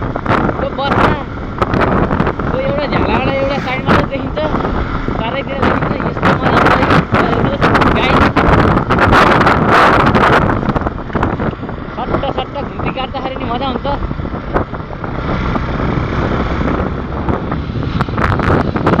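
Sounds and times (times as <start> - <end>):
motorcycle engine: 0.0 - 19.0
road noise: 0.0 - 19.0
wind buffeting microphone: 0.0 - 19.0
person speaking: 0.5 - 1.4, 2.3 - 8.6, 11.9 - 14.2.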